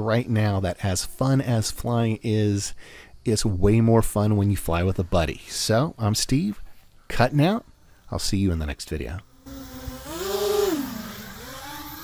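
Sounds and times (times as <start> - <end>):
quadcopter motors buzzing: 9.0 - 12.0.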